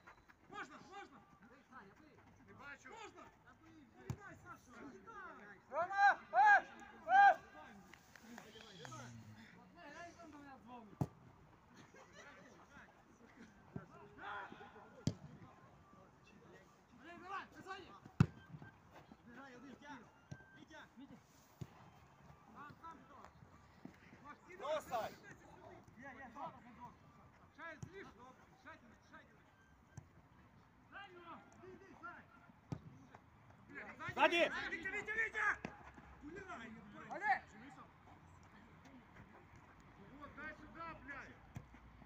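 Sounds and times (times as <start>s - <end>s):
players shouting: 5.7s - 7.6s.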